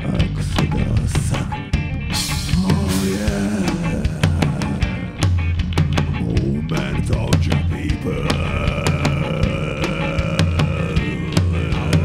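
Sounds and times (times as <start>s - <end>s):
bass and drums: 0.0s - 12.0s
electric guitar strumming: 0.0s - 12.0s.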